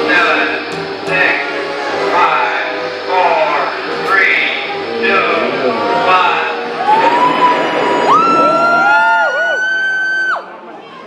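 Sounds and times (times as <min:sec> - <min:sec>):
siren-like gliding tones: 0:00.0 - 0:10.4.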